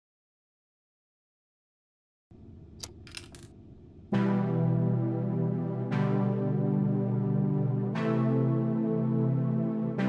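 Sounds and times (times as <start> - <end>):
sharp mechanical clicks: 2.8 - 3.5.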